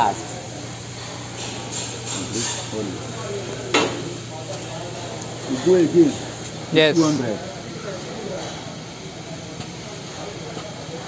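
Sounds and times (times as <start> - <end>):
hydraulic pump hissing: 5.4 - 7.4.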